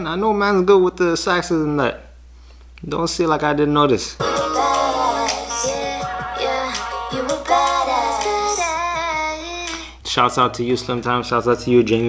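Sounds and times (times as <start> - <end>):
woman singing over backing track: 4.2 - 10.0.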